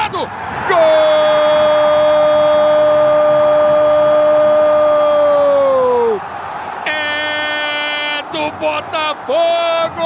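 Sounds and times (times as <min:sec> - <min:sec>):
crowd noise: 0:00.0 - 0:10.0
commentator shouting goal: 0:06.9 - 0:10.0.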